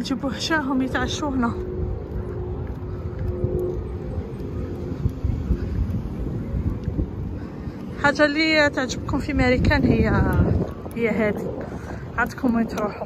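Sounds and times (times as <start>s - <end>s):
distant engine drone: 0.0s - 13.0s
low outdoor rumble: 0.0s - 13.0s.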